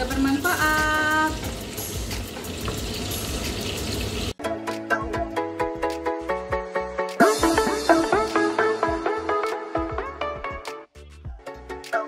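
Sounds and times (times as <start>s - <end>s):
pasta hissing in a pan: 0.0s - 4.4s
music with a regular beat: 4.4s - 12.0s.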